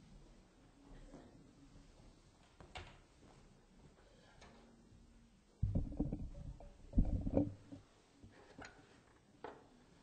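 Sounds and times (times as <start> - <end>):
microphone handling rumbling: 5.6 - 7.8.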